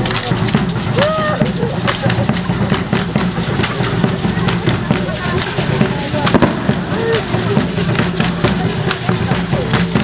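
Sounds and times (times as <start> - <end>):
crowd chatter: 0.0 - 10.0
hand percussion clicking and cracking: 0.0 - 10.0.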